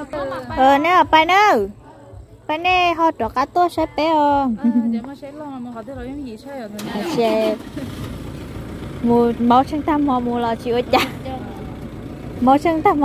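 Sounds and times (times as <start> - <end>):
pickup engine starting and idling: 6.6 - 13.0.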